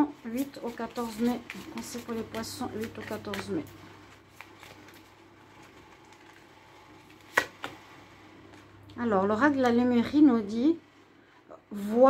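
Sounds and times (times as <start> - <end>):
cards shuffling: 0.4 - 7.8.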